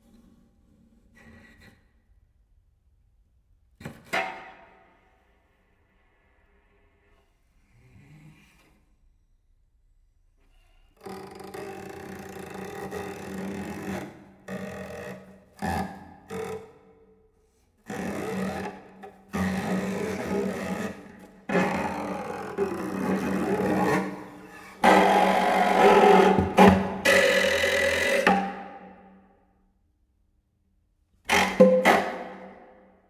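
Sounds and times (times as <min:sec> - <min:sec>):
cello scraping strokes: 0:17.9 - 0:28.6.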